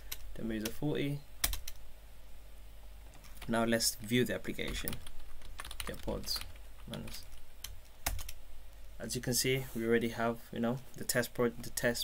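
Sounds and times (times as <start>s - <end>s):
computer keyboard typing: 1.4s - 1.8s, 4.6s - 8.4s.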